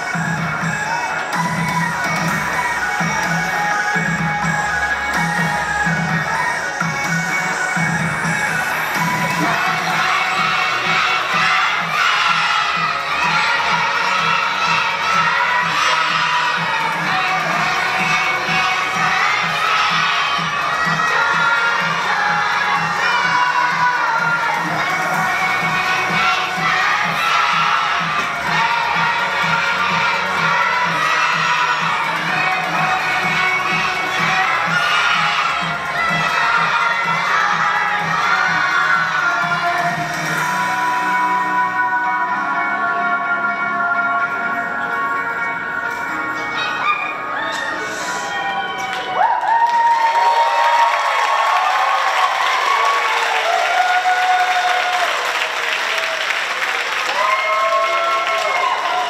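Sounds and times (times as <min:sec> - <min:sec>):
children shouting and cheering: 0:00.0 - 0:59.0.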